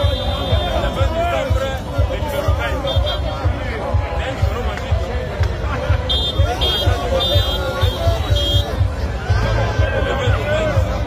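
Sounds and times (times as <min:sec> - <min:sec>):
crowd talking and shouting: 0:00.0 - 0:11.0.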